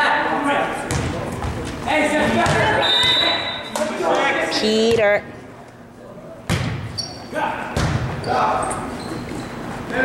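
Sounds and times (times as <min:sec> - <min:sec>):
sneaker squeaks on gym floor: 0:02.4 - 0:03.8, 0:06.6 - 0:09.8
volleyball being hit: 0:02.4 - 0:03.9, 0:06.5 - 0:06.9, 0:07.7 - 0:08.2.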